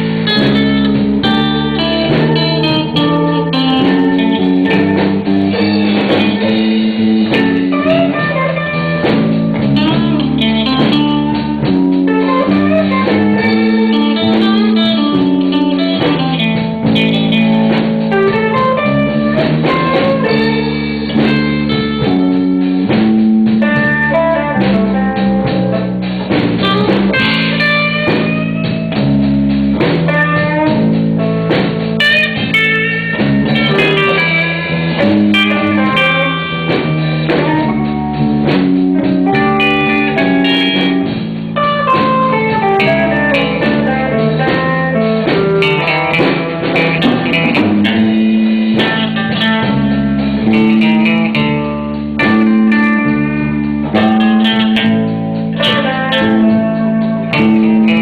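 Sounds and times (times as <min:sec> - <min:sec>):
blues band playing: 0:00.0 - 0:58.0
guitar lines: 0:00.0 - 0:58.0
low bass: 0:00.0 - 0:58.0.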